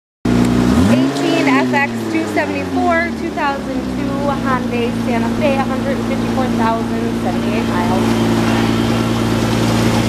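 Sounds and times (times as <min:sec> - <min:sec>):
car engine idling: 0:00.3 - 0:10.0.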